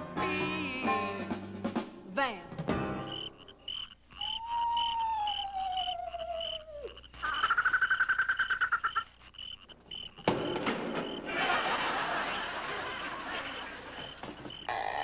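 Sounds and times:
high repeating chirp: 3.0s - 11.3s, 13.4s - 15.0s
rapid croak-like trill: 3.0s - 15.0s
falling whistling tone: 3.1s - 9.0s.

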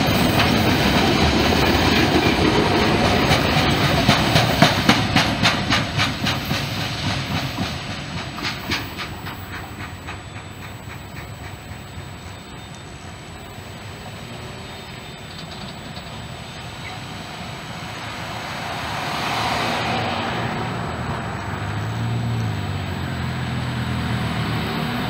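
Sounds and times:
cars crossing railroad crossing: 0.0s - 25.0s.

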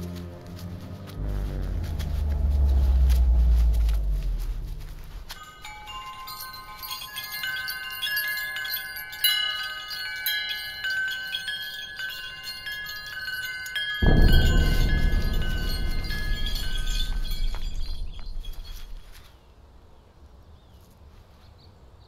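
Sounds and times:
loud low rumble: 0.0s - 5.4s, 14.0s - 19.2s
chimes ringing: 5.0s - 19.3s.

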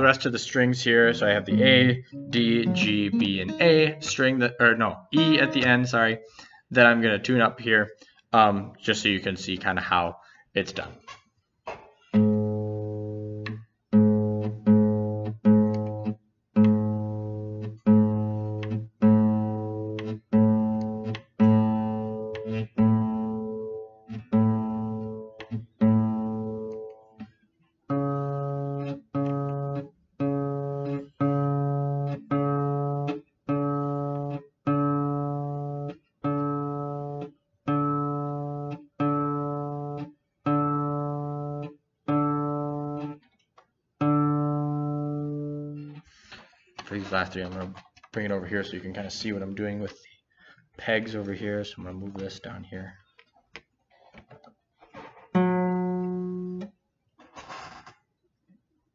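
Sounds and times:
acoustic guitar string plucked: 0.9s - 6.1s, 11.7s - 27.3s, 27.9s - 43.3s, 44.0s - 47.7s, 54.4s - 56.7s.

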